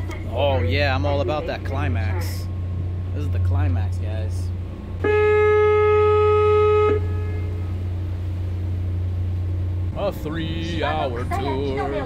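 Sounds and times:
boat engine drone: 0.0 - 12.0
boat horn blast: 4.8 - 9.9.

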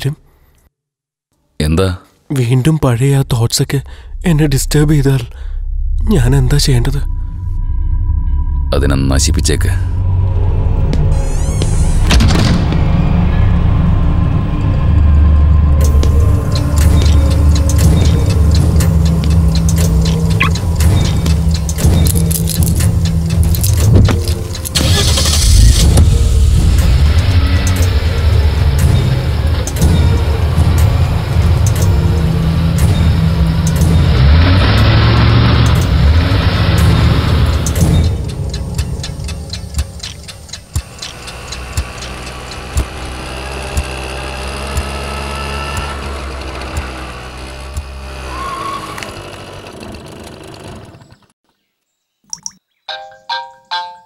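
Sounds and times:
dramatic film score: 2.8 - 49.5
car engine starting and running: 3.2 - 51.4.

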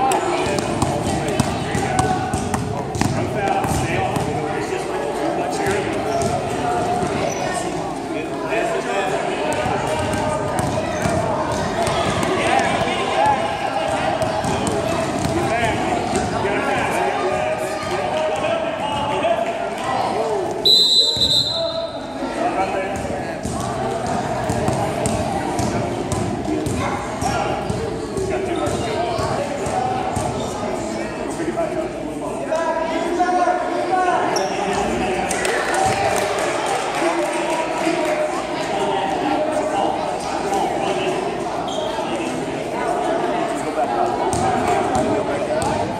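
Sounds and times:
spectators chattering: 0.0 - 45.9
basketball bouncing on court: 9.5 - 12.8, 22.9 - 26.8
referee whistle blast: 20.6 - 22.0.

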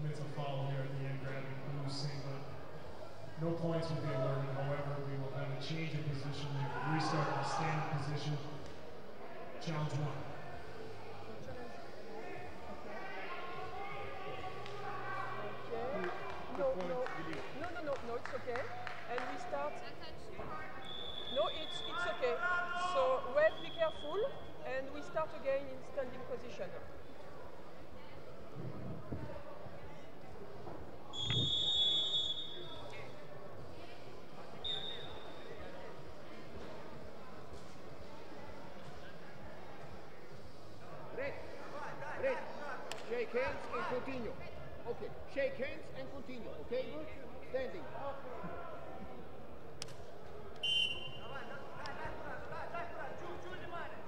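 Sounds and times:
referee whistle blasts: 20.8 - 22.4, 23.4 - 24.6, 31.1 - 32.8, 34.6 - 35.5, 50.6 - 51.4.

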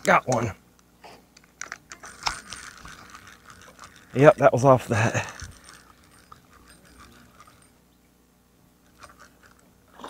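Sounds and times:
fishing rod and reel clicks: 0.0 - 7.8, 8.8 - 10.0.

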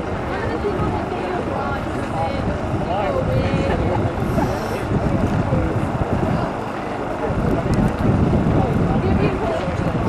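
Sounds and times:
spectators talking: 0.0 - 10.0
wind buffeting microphone: 0.0 - 10.0.

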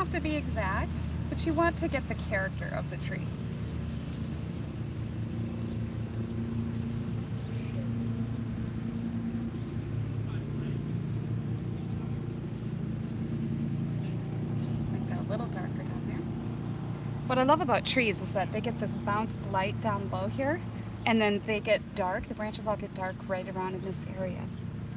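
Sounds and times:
engine running steadily: 0.0 - 24.9.

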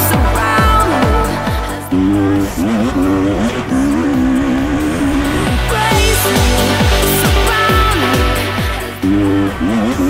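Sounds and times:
dirt bike engine revving: 0.0 - 10.0.

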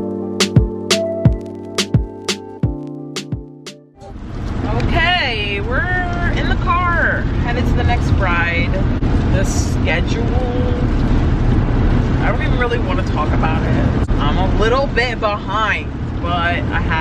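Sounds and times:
car rumble from inside: 4.0 - 17.0
woman talking: 4.6 - 10.9, 12.2 - 17.0.

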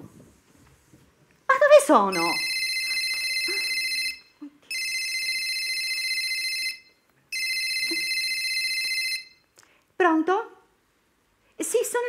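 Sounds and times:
telephone ringing: 2.1 - 9.4.

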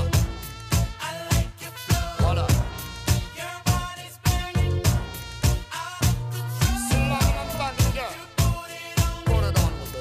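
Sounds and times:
instrumental reggae-pop dance music: 0.0 - 10.0.

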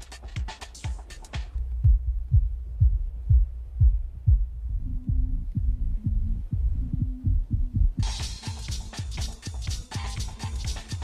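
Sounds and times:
muffled kick drum thuds: 0.4 - 11.0
muffled low bass melody: 1.5 - 11.0.

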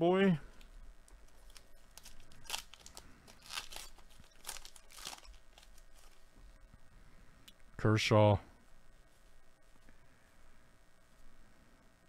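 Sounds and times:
wrapper tearing and crinkling: 1.3 - 6.2.

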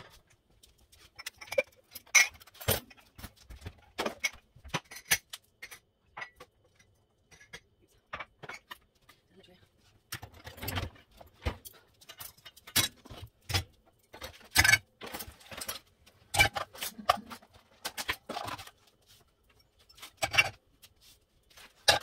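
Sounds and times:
dishes clinking in dishwasher rack: 14.5 - 17.3.

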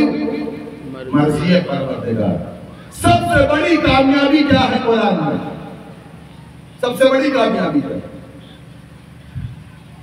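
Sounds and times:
low background rumble and hiss: 0.0 - 10.0.

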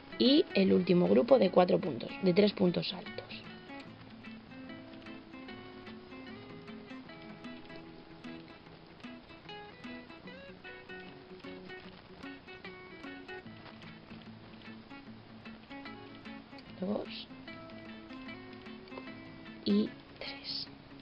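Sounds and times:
plucked acoustic guitar music: 0.0 - 21.0.

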